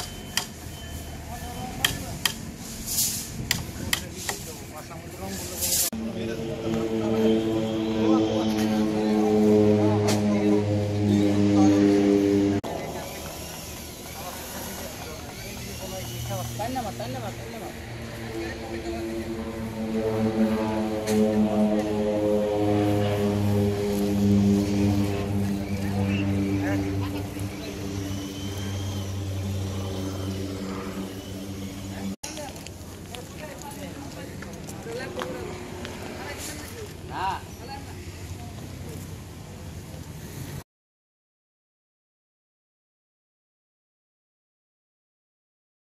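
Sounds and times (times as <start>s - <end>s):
voices: 0.0s - 40.6s
outdoor noise: 0.0s - 40.7s.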